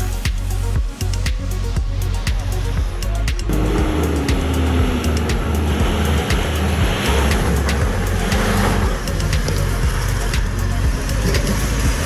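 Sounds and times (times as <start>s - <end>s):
background music with steady beat: 0.0s - 12.0s
engine running under load: 2.1s - 12.0s.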